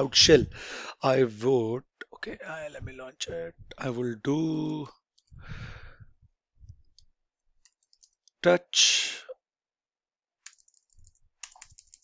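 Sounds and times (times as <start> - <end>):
keyboard typing clicks: 7.6 - 8.2, 10.5 - 12.0.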